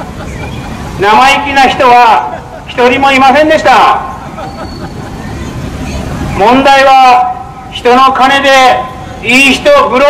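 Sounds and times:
road traffic hum: 0:00.0 - 0:10.0.

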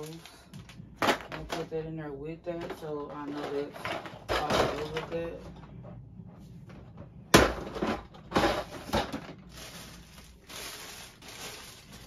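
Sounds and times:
plastic bags crinkling: 0:00.0 - 0:00.8, 0:08.4 - 0:12.0.

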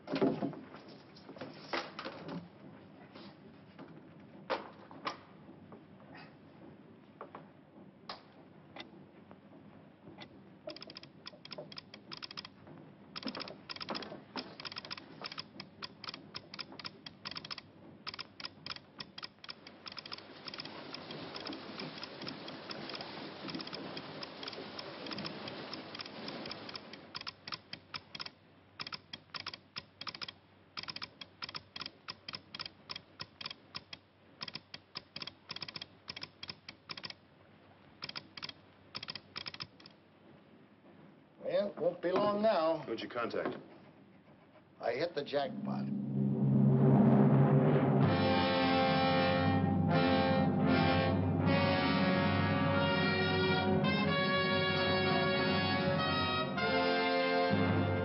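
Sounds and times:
telegraph key clicking morse code: 0:26.4 - 0:37.1.

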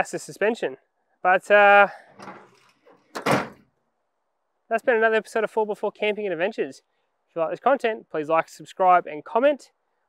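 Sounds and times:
tailgate handling noise: 0:02.2 - 0:03.6
steel tailgate slamming shut: 0:03.1 - 0:03.6.

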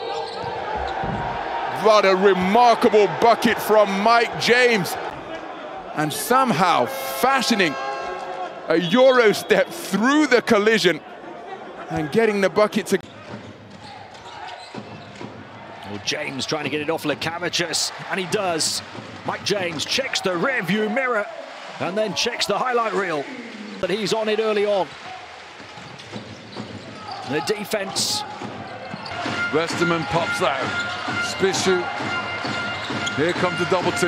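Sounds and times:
arena hall noise: 0:00.0 - 0:34.0
arena crowd murmur: 0:20.4 - 0:24.1.

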